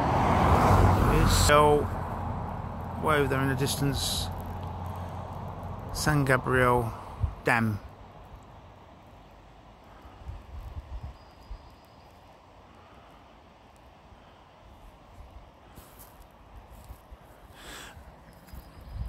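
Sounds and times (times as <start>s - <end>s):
low rumbles: 0.0s - 8.6s.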